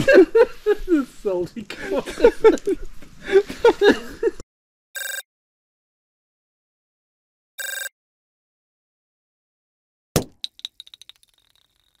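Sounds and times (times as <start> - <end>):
sharp knock: 10.2 - 10.6
small object bouncing clicks: 10.2 - 12.0.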